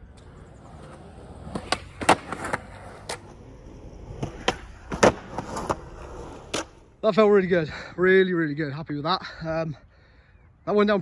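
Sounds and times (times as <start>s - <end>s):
skateboard wheels rolling on concrete: 0.0s - 9.1s
skateboard clacks and slaps: 0.1s - 3.3s, 4.2s - 5.8s.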